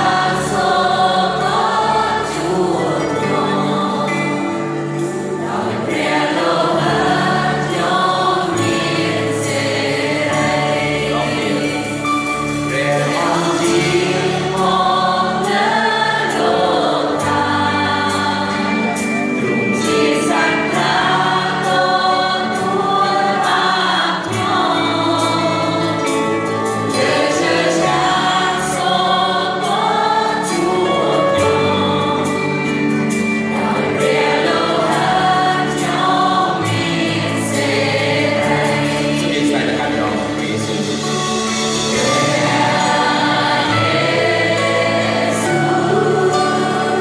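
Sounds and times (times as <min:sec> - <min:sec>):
choir singing with live band: 0:00.0 - 0:47.0.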